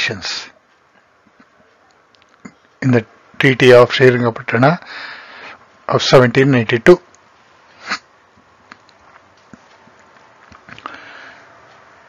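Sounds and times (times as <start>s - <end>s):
faint clicks: 0.7s - 2.8s.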